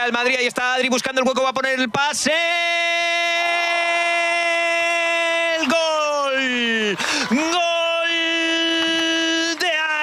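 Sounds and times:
commentator shouting goal cry: 0.0s - 10.0s.

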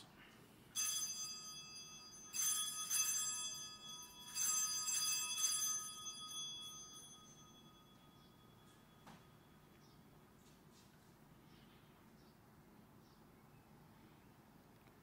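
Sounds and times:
altar bells ringing: 0.7s - 9.8s.

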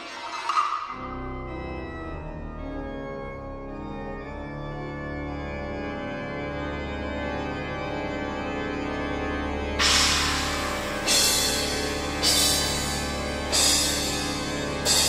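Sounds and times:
church organ chords: 1.0s - 15.0s.

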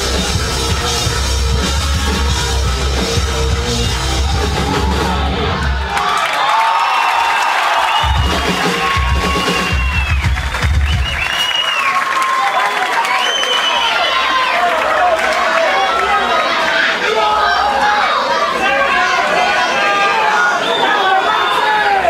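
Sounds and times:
live rock band playing: 0.0s - 5.8s, 8.0s - 11.2s
crowd cheering and shouting: 0.0s - 22.0s.

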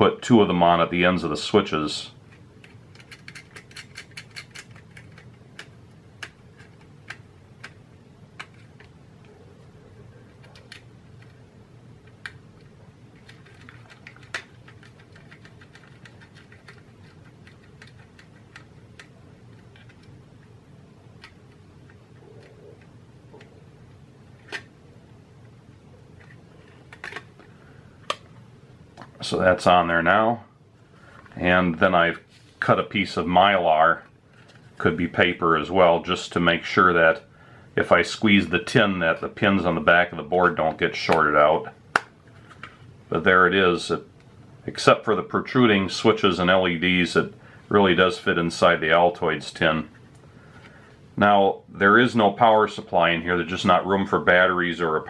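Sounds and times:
low steady hum: 0.0s - 55.0s
small metallic clicks: 2.3s - 7.8s.

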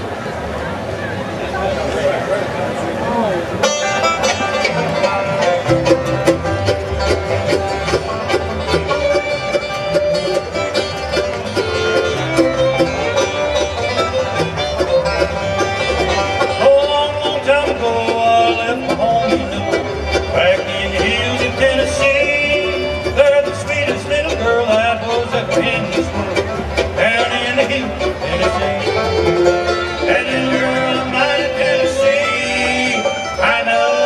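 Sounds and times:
bluegrass band playing: 0.0s - 34.0s
fast picked banjo notes: 3.6s - 34.0s.

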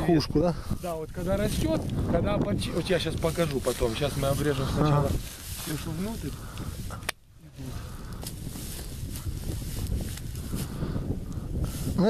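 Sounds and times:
wind rumble on microphone: 0.0s - 12.0s
faint clicks and rustles in branches: 0.6s - 12.0s.

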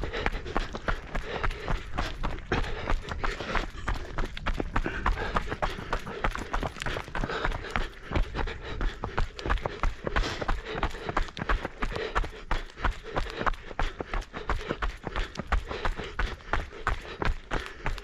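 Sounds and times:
running footsteps on a path: 0.0s - 18.0s.

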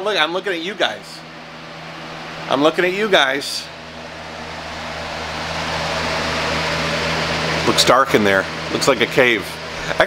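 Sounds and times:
box fan running: 0.0s - 10.0s.

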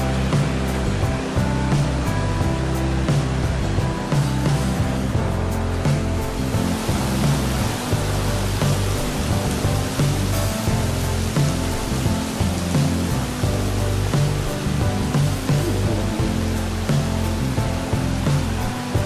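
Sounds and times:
background music with bass line: 0.0s - 19.0s.

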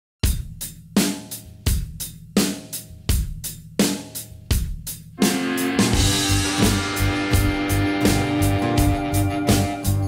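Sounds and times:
drum kit beat: 0.2s - 10.0s
electric guitar and bass: 5.2s - 10.0s.

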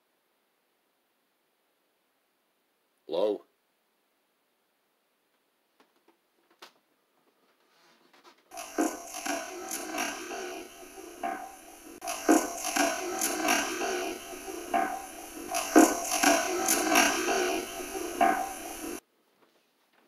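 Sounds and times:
steady hiss: 8.5s - 19.0s.

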